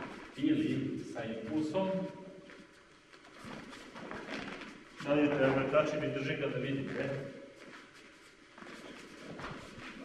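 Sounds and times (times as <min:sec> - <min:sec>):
rustle of cotton uniforms: 0:02.4 - 0:06.0, 0:06.7 - 0:10.0
bare feet shuffling on foam mats: 0:02.5 - 0:05.8, 0:06.8 - 0:10.0.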